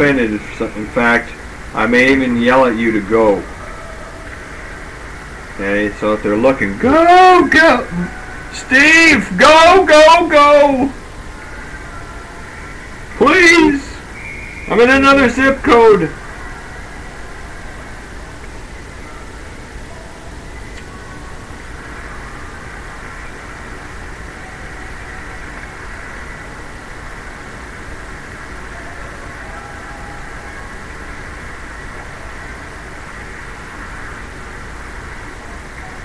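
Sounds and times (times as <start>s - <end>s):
ice rink ambience hum and hiss: 0.0s - 36.0s.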